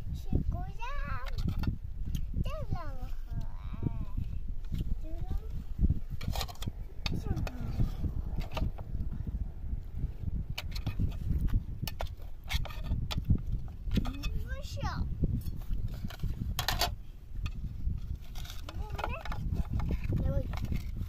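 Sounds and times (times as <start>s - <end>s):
low rumble: 1.6s - 21.0s.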